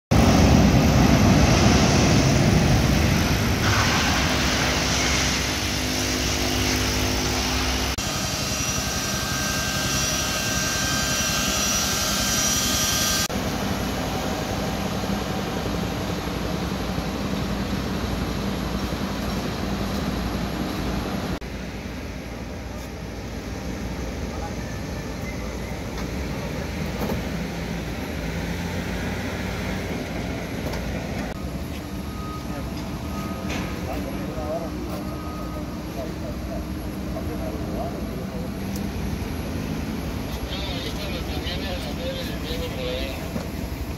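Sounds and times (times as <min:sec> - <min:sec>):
high engine whine: 0:00.1 - 0:43.9
jet engines running: 0:00.1 - 0:43.9.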